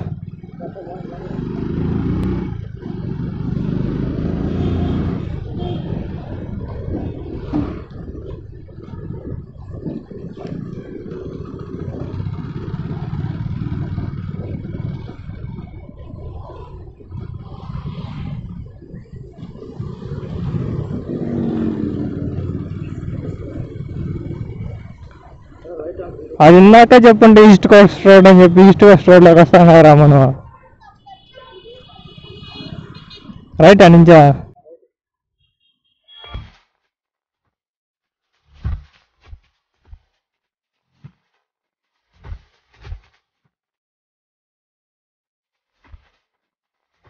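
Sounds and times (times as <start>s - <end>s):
motorcycle engine running: 0.0s - 6.1s, 10.6s - 16.0s.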